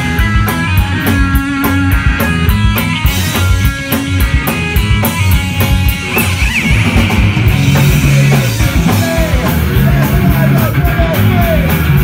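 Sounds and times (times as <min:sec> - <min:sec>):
distorted electric guitar chords: 0:00.0 - 0:12.0
fast driving drum beat: 0:00.0 - 0:12.0.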